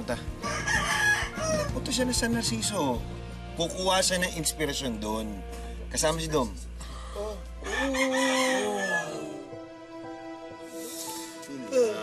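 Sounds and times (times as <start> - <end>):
rooster crowing: 0.4 - 1.8, 7.6 - 9.5.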